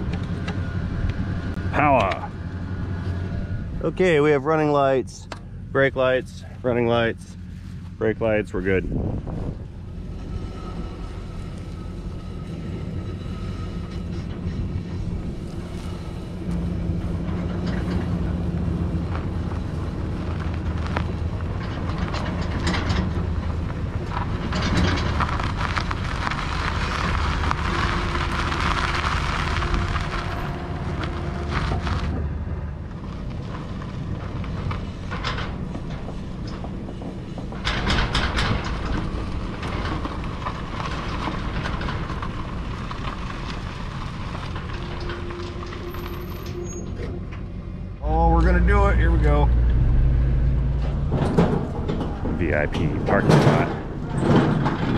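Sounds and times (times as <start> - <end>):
trailer frame clattering: 0.0 - 54.9
tyres rolling over gravel: 0.0 - 54.9.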